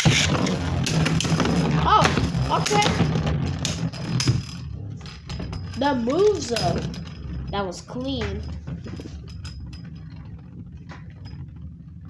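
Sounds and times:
spinning tops clashing: 0:00.0 - 0:10.0
spinning tops whirring: 0:00.0 - 0:12.0.

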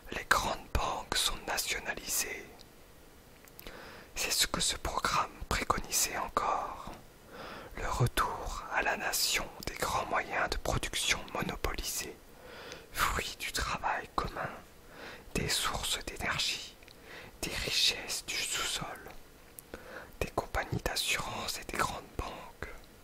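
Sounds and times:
person whispering: 0:00.0 - 0:02.6, 0:04.1 - 0:07.0, 0:07.7 - 0:12.2, 0:12.9 - 0:14.7, 0:15.3 - 0:16.8, 0:17.4 - 0:19.2, 0:20.1 - 0:22.9.

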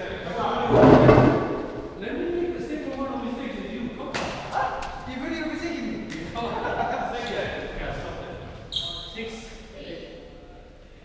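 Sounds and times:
indistinct voices in echoing hall: 0:00.0 - 0:11.0.

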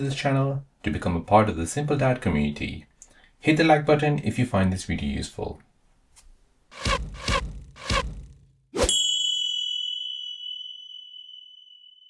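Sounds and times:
high bright ringing ding: 0:08.9 - 0:12.0.

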